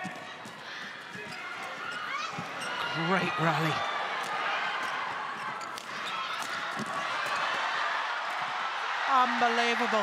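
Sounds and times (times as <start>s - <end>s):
shoe squeaks on court: 1.1s - 3.0s.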